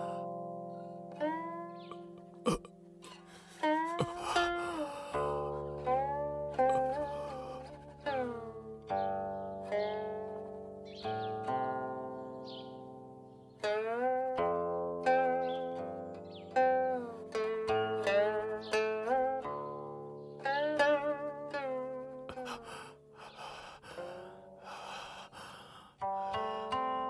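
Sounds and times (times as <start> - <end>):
zither plucked sliding notes: 0.0 - 23.2, 26.0 - 27.0.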